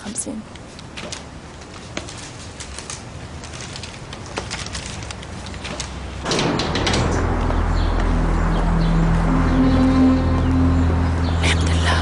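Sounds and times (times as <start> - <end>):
metal sliding gate rattling: 5.6 - 8.0
low soundtrack tones: 6.3 - 12.0.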